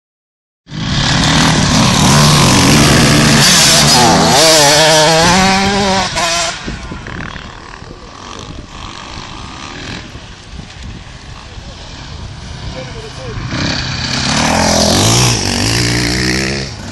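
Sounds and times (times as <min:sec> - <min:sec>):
motorcycle engine revving: 0:00.7 - 0:16.9.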